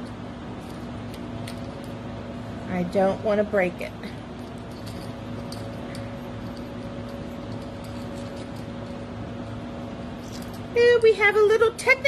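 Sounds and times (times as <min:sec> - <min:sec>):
metal chain clicking: 0:00.0 - 0:02.1, 0:04.3 - 0:09.6, 0:10.2 - 0:11.4
steady low hum: 0:00.0 - 0:12.0.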